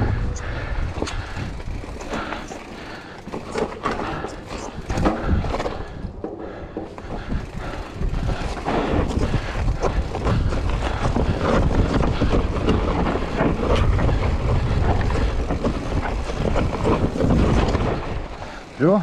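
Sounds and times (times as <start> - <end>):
wind on microphone: 0.0 - 2.4, 4.1 - 18.3
bike clattering and rattling: 0.0 - 19.0
tyres crunching over stones: 0.4 - 19.0.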